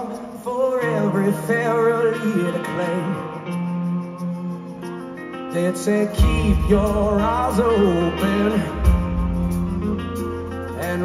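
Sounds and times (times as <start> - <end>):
electric guitars: 0.0 - 11.0
live rock band through pa: 0.0 - 11.0
bass line: 6.2 - 11.0.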